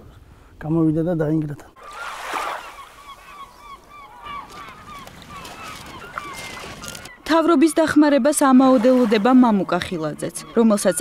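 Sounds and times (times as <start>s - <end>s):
birds calling: 1.7s - 11.0s.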